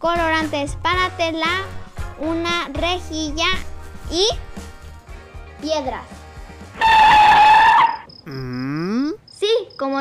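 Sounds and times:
comic screeching sound effect: 6.8s - 8.1s.

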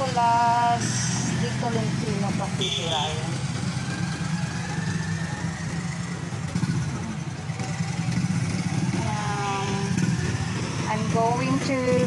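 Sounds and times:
motorcycle engines passing: 0.0s - 12.0s.

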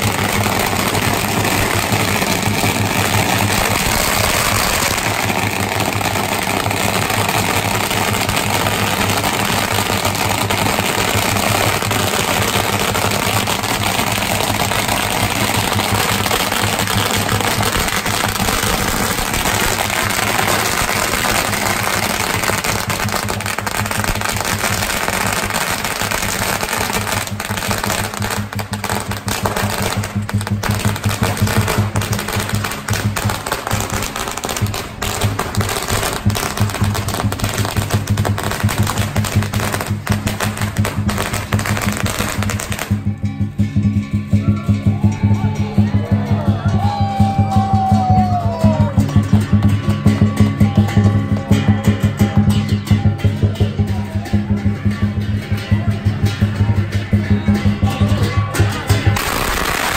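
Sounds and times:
drum and cymbals playing: 0.0s - 59.9s
firecrackers crackling and popping: 0.0s - 59.9s.

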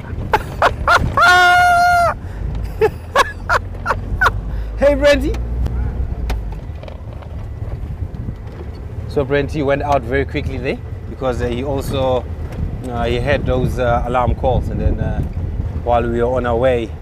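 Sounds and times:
vehicle engine rumbling: 0.0s - 17.0s
person shouting: 1.2s - 2.2s.

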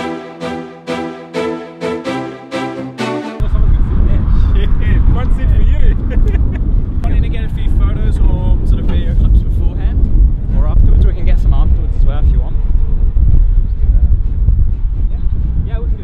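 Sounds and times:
music track: 0.0s - 3.8s
wind buffeting microphone: 3.4s - 16.0s.

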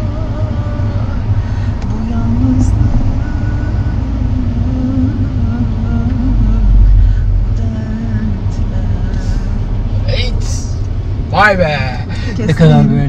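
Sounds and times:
car cabin rumble: 0.0s - 13.0s.

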